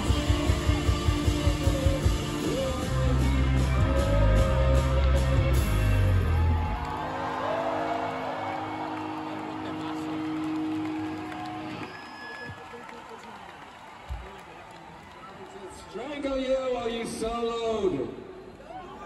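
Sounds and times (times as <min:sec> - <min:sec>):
live rock band playing: 0:00.0 - 0:07.4
crowd cheering and whooping: 0:00.0 - 0:15.8.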